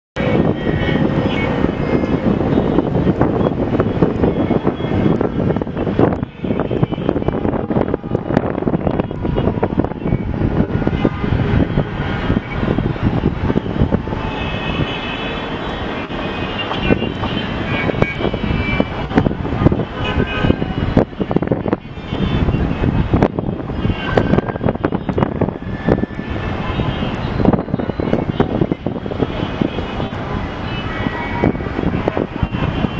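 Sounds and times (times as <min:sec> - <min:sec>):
city traffic rumble: 0:00.2 - 0:32.9.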